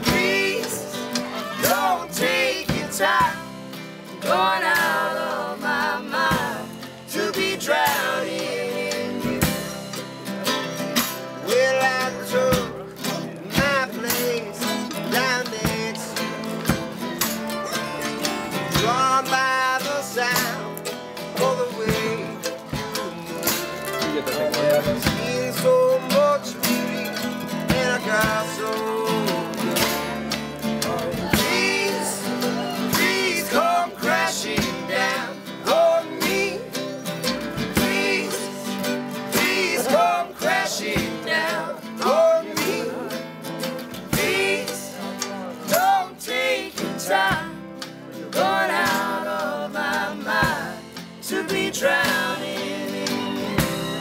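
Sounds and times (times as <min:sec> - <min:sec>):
acoustic bluegrass string band: 0:00.0 - 0:54.0.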